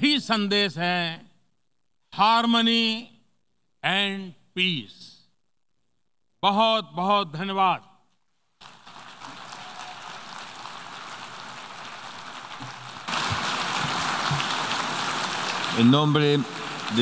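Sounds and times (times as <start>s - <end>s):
audience applause: 8.6s - 17.0s.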